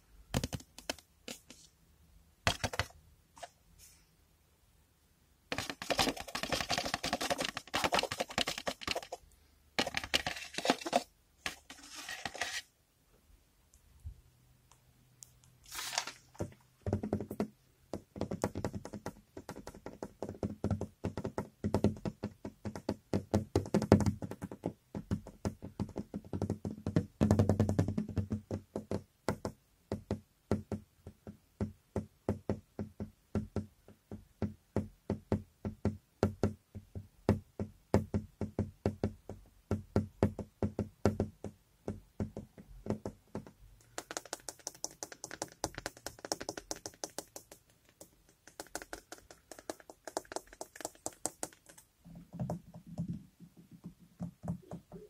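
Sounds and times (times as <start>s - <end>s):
fingers tapping on window: 0.3s - 1.6s, 16.4s - 55.0s.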